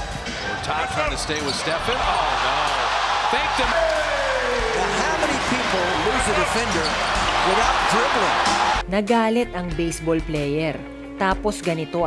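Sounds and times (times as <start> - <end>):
arena crowd noise: 0.0 - 8.8.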